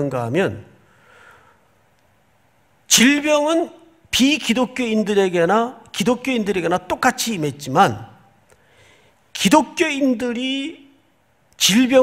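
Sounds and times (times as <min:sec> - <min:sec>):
man speaking: 0:00.0 - 0:00.8, 0:02.9 - 0:08.4, 0:09.3 - 0:11.0, 0:11.6 - 0:12.0
faint breath: 0:00.8 - 0:01.8, 0:08.5 - 0:09.2.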